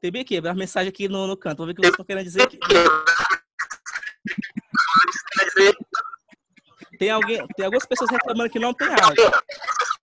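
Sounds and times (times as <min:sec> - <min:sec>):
garbled voice over video call: 0:00.0 - 0:10.0.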